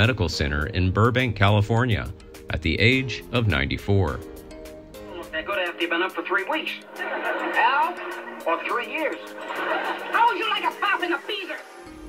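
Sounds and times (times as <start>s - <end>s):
man talking: 0.0s - 4.2s
background music: 0.0s - 12.0s.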